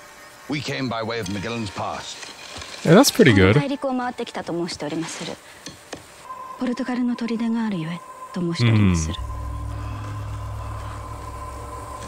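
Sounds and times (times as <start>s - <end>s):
low hum: 9.1s - 12.0s.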